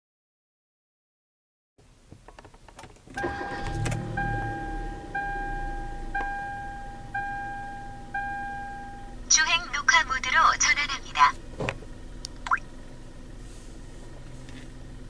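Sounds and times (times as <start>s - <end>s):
car engine starting and idling: 1.9s - 15.0s
electronic warning chimes: 3.2s - 9.1s.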